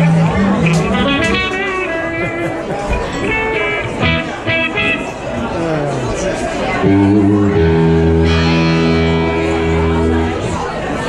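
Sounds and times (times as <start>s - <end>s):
electric guitar through amplifier: 0.0s - 11.0s.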